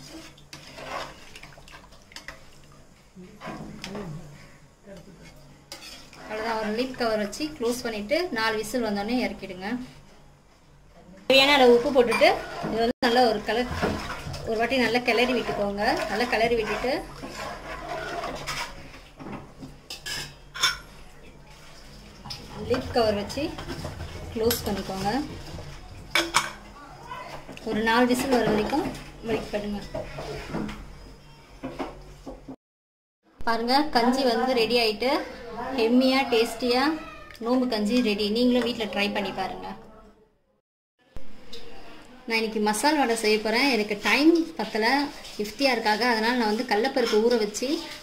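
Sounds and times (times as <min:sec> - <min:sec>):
ladle stirring and clinking pot: 0:00.0 - 0:02.8, 0:05.2 - 0:07.8, 0:11.4 - 0:26.7, 0:27.3 - 0:30.9.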